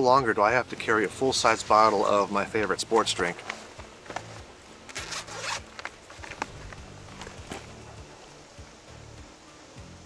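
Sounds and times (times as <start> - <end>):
backpack zipper opening: 3.4 - 7.7.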